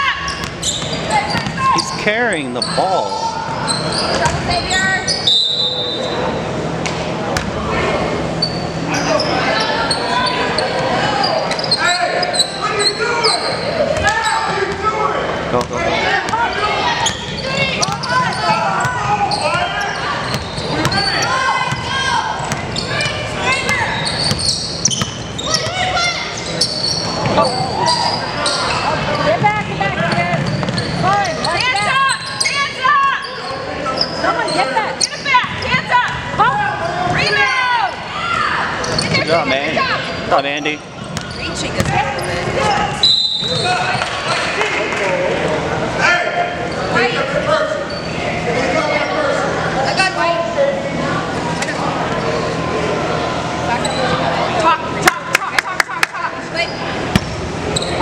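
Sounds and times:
basketball bouncing on wooden floor: 41.2 - 42.0.

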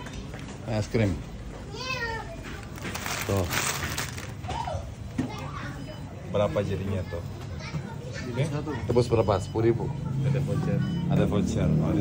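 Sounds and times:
shop background noise: 0.0 - 12.0.

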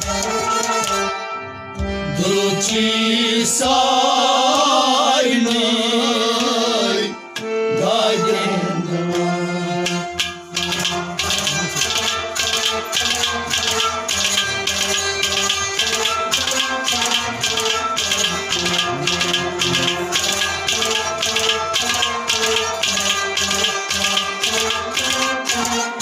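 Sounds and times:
rattling percussion beat: 0.0 - 1.1, 9.1 - 26.0
held melody notes: 0.0 - 26.0.

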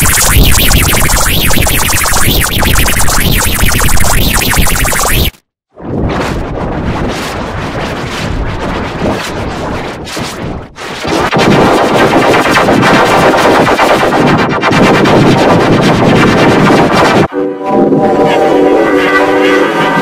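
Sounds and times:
distorted crackling noise with stuttering: 0.0 - 5.4, 10.8 - 17.3.

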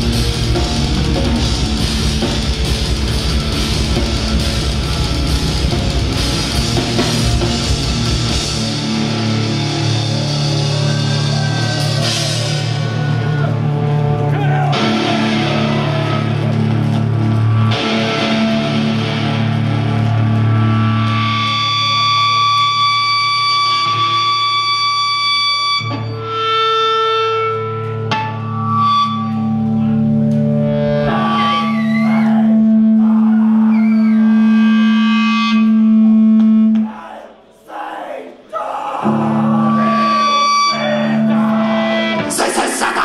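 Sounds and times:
distorted electric guitar: 0.0 - 36.9, 39.0 - 43.0
live metal band playing: 0.0 - 37.0, 39.0 - 43.0.

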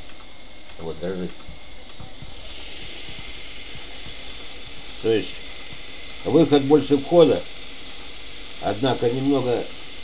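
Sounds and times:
small electric motor whirring: 1.0 - 10.0.

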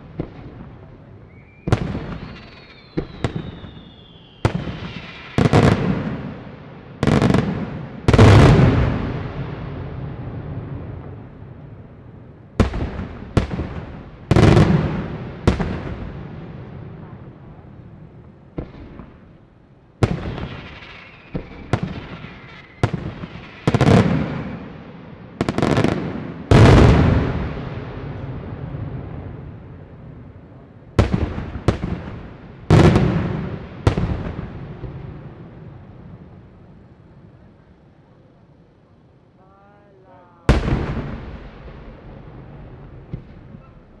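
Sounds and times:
rolling echo: 39.9 - 44.0
firework bang: 40.5 - 44.0.

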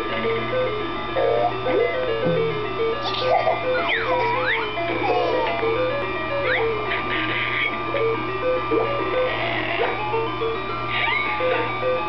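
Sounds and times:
electronic beeping children's tune: 1.2 - 9.3.

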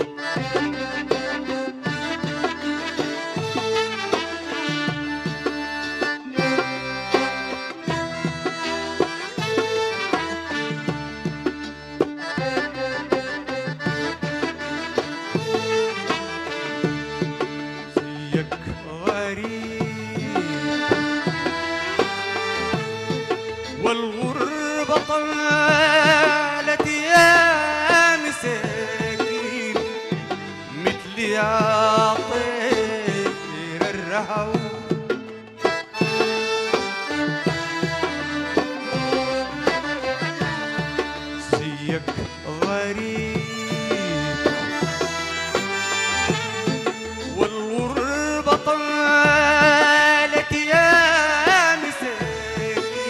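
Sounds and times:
accordion melody: 0.0 - 53.0
hand drums beat: 0.0 - 53.0
violins playing melody: 0.0 - 53.0
person singing: 18.1 - 21.4, 23.7 - 35.3, 41.4 - 45.2, 46.0 - 53.0.

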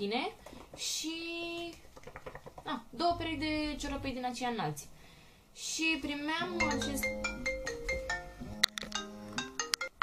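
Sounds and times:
phone ringtone melody: 6.5 - 10.0.

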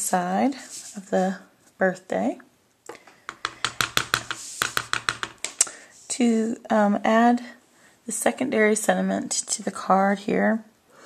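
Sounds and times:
fingertips tapping paper: 3.3 - 5.5.

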